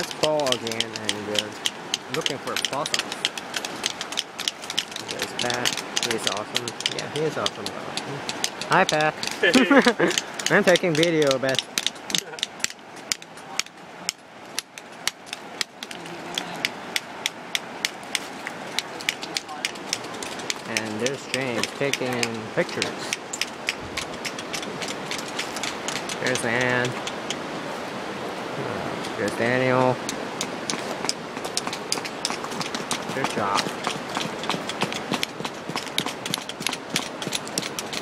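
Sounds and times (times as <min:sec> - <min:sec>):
hammer tapping steel chisel: 0:00.0 - 0:09.4, 0:10.1 - 0:27.4
steady hiss: 0:00.0 - 0:19.5.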